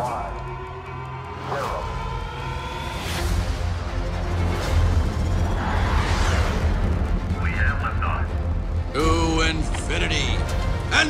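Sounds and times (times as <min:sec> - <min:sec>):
film score music: 0:00.0 - 0:11.0.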